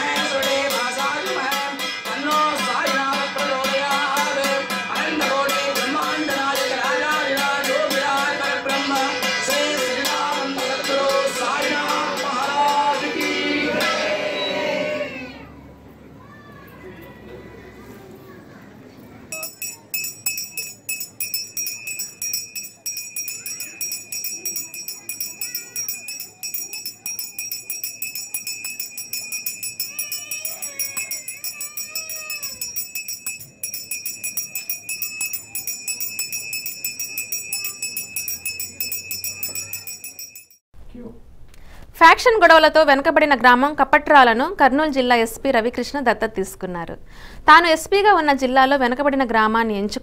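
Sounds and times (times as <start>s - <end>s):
devotional singing with music: 0.0s - 15.2s
hand bell rung rapidly: 19.3s - 40.6s.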